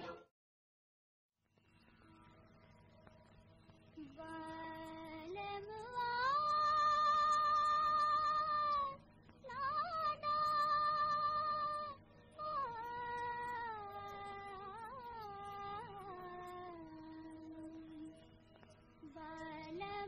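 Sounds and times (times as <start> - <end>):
woman singing long held notes: 4.0 - 18.2, 19.0 - 20.0.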